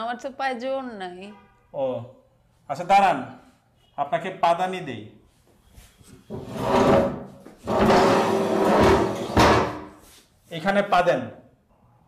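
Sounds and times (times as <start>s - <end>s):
stool scraping across floor: 6.3s - 10.2s.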